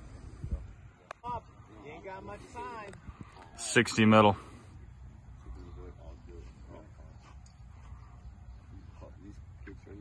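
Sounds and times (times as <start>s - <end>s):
low outdoor rumble: 0.0s - 10.0s
distant voices talking: 0.6s - 10.0s.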